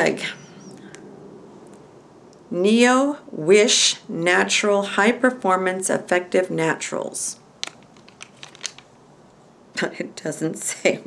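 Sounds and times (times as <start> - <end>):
packet crinkling and clicking: 7.6 - 8.9.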